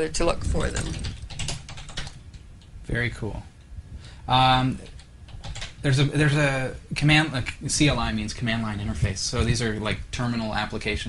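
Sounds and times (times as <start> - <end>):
computer keyboard typing: 0.4 - 2.7, 4.8 - 6.0.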